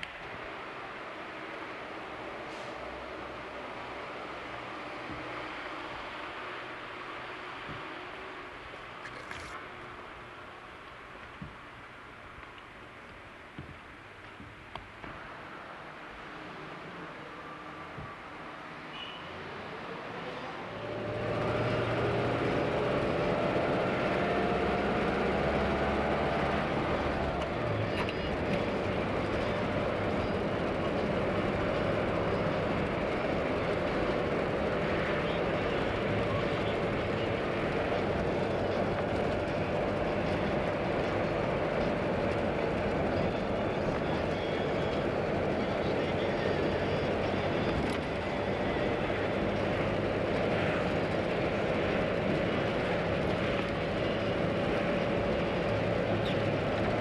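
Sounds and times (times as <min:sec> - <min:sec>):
vehicle engine and road noise: 0:00.0 - 0:57.0.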